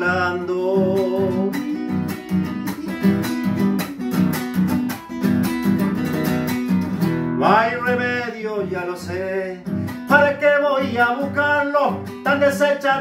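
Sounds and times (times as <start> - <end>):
man singing: 0.0 - 4.4, 7.4 - 13.0
classical guitar strumming: 0.0 - 13.0.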